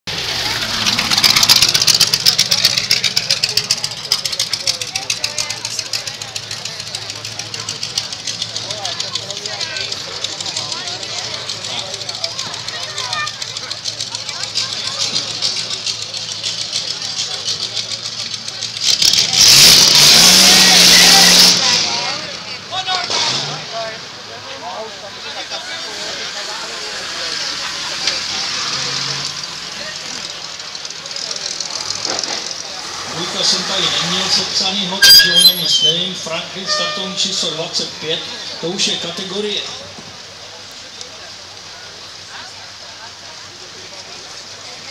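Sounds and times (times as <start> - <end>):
racing car engine revving: 0.1 - 12.6, 14.6 - 22.4, 23.0 - 23.9.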